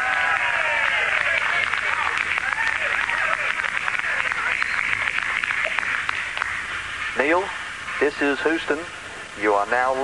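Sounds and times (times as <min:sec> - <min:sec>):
faint radio voices: 0:00.0 - 0:10.0
crackling radio static: 0:01.0 - 0:10.0.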